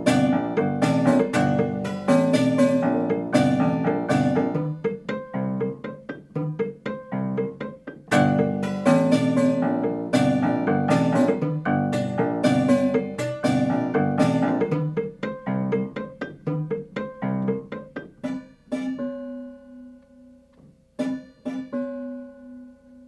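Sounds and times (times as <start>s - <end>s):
prepared piano chords and notes: 0.0s - 23.0s.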